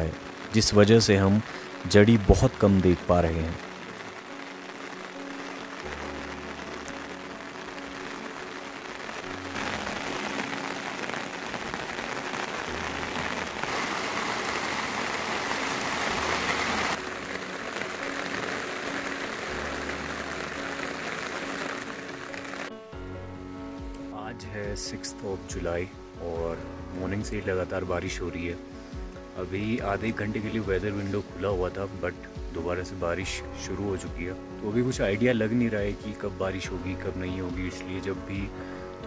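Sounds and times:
soft music of low notes: 0.0s - 39.0s
steady rain: 0.0s - 39.0s.

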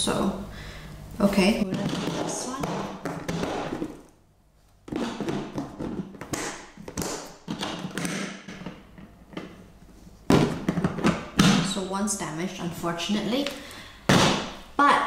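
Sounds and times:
loud knock on plastic: 1.7s - 4.0s, 4.9s - 8.8s.

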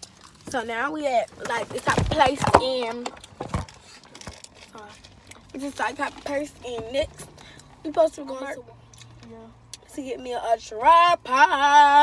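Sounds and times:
crinkling rustles and knocks: 0.0s - 8.0s.

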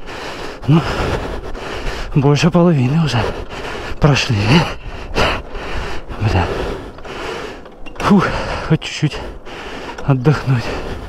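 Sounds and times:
man breathing hard: 0.0s - 2.2s, 3.1s - 11.0s
steady rushing noise: 0.0s - 11.0s.

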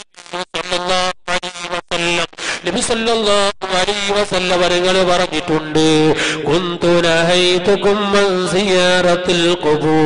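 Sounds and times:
man chanting: 0.3s - 10.0s.

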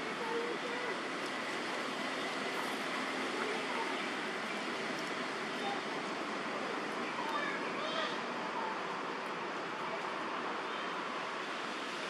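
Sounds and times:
rushing background noise: 0.0s - 12.0s.

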